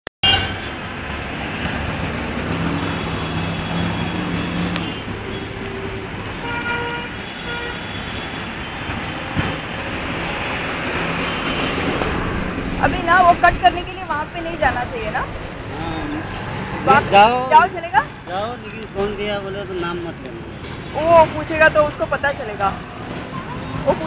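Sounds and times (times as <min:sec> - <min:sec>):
road traffic noise: 0:00.2 - 0:24.0.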